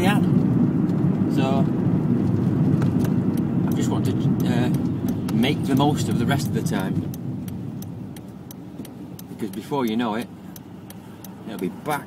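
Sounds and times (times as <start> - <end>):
car engine and road rumble: 0.0 - 12.0
light repeating tick: 2.8 - 12.0.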